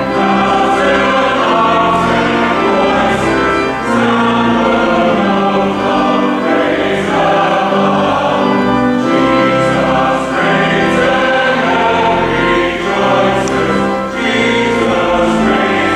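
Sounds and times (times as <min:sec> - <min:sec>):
church choir singing: 0:00.0 - 0:15.9.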